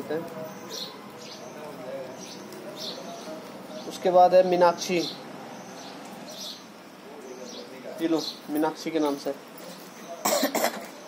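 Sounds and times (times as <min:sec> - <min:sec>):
person coughing: 0:10.2 - 0:10.9.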